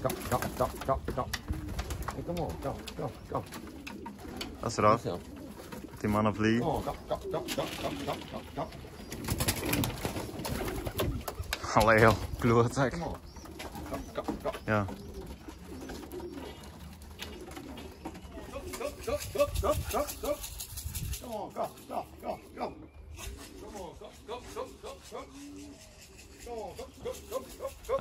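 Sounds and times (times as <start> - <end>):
pigeons cooing: 0.0 - 28.0
man speaking: 5.9 - 8.8, 13.8 - 15.0.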